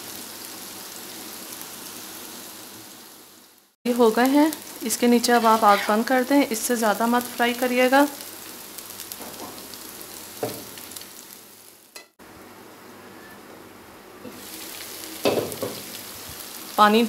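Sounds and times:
oil sizzling in a frying pan: 0.0 - 12.7, 14.2 - 17.0
stirring in a pan: 4.6 - 6.3.

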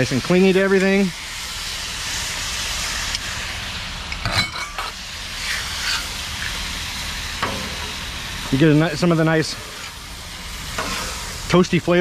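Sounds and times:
sauce sizzling on a griddle: 0.0 - 12.0
metal spatula scraping: 5.4 - 6.1.

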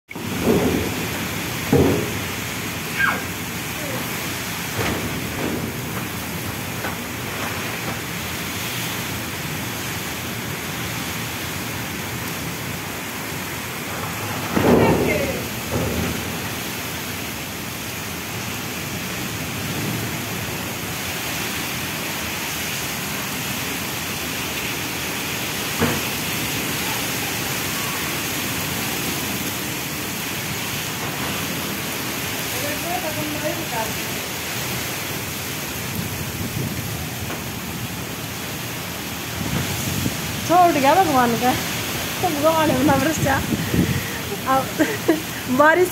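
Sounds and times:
heavy rain and wind: 0.1 - 45.9.

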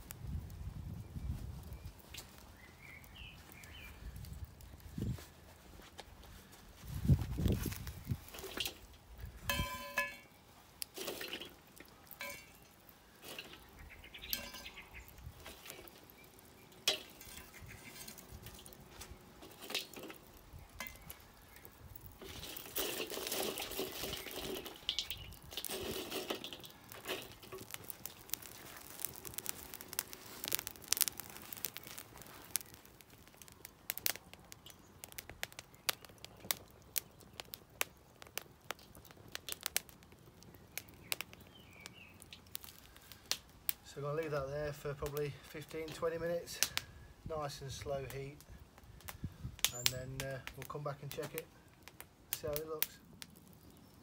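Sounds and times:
sharp clicks and crackles: 7.6 - 43.8, 45.0 - 46.9, 47.8 - 54.0
coals clinking on metal lid: 9.4 - 10.4, 11.0 - 13.6, 14.2 - 15.9, 16.7 - 18.8, 20.8 - 21.2, 22.2 - 30.6
scraping and rustling: 22.1 - 32.9.

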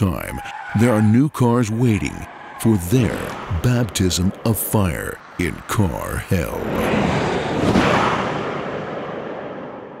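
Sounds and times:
loud rushing rumble: 3.1 - 10.0.

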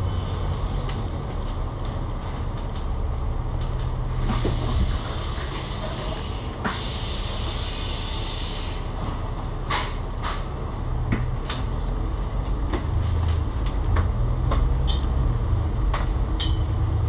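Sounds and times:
bus diesel engine: 0.0 - 17.0
clicks and knocks from bus body: 9.1 - 15.1.

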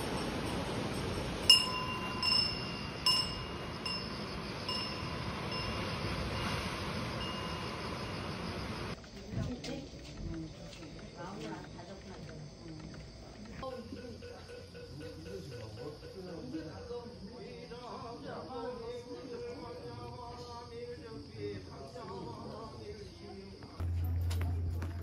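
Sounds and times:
metallic wind bell ringing: 0.0 - 9.0, 23.8 - 25.0
surf rushing: 0.0 - 9.0.

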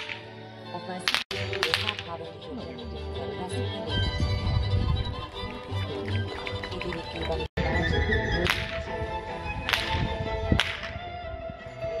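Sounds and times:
whip cracks: 0.0 - 0.3, 1.0 - 2.1, 8.4 - 8.8, 9.6 - 11.0.

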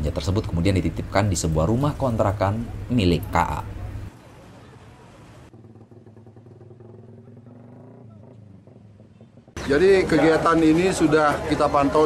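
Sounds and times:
people talking: 0.0 - 5.4, 9.6 - 12.0
vehicle engine running: 0.2 - 12.0.

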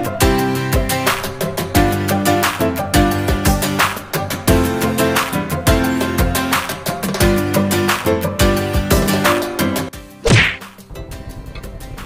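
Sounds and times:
music: 0.0 - 12.0
whip-like swish: 10.2 - 10.8.

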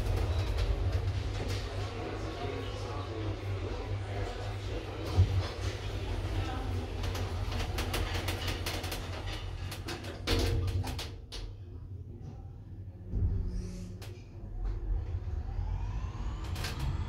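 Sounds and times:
elevator doors clicking and knocking: 0.0 - 3.0, 4.0 - 11.7
steady low hum: 0.0 - 17.0.

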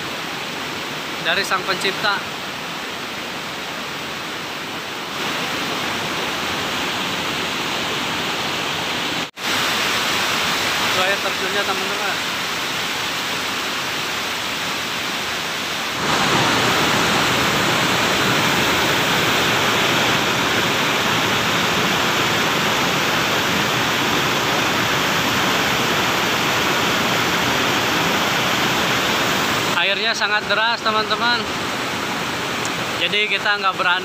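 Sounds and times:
water rushing over rapids: 0.0 - 34.0
waterfall: 0.0 - 34.0.

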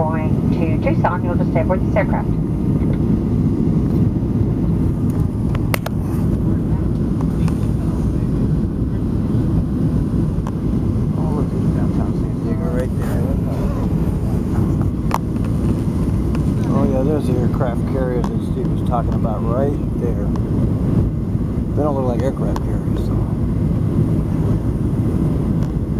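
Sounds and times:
jet cabin engine roar: 0.0 - 25.9
faint voices: 6.3 - 9.4, 11.1 - 15.1, 16.5 - 20.3, 21.8 - 23.5.

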